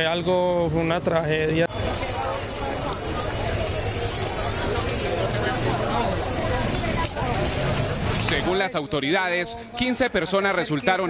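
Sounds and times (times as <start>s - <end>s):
overlapping distant voices: 0.8s - 11.0s
dense clattering noise: 1.7s - 8.6s.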